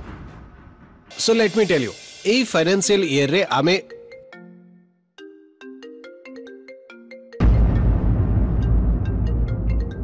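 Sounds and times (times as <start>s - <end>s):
phone ringtone tune: 3.9s - 7.6s
dramatic music with heavy bass: 7.4s - 10.0s.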